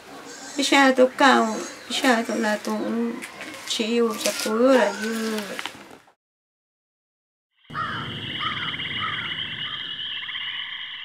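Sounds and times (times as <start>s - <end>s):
frogs trilling: 0.0s - 3.8s, 7.6s - 11.0s.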